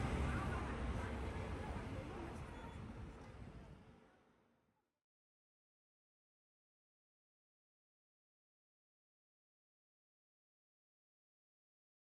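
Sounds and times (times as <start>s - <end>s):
traffic rumble: 0.0s - 3.2s.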